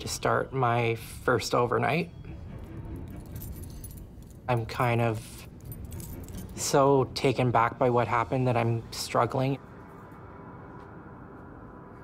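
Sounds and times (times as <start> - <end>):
low steady rumble: 0.0 - 12.0
keys jingling: 2.9 - 6.8.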